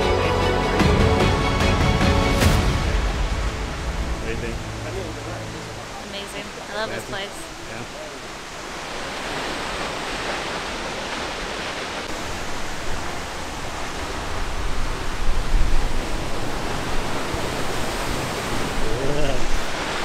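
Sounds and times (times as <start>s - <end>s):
waterfall rushing: 0.0s - 20.0s
low rumble: 1.3s - 6.1s.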